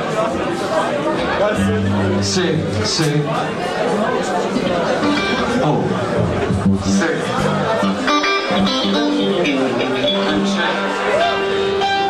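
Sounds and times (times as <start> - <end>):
electric guitar single notes: 1.6 - 3.3, 5.0 - 12.0.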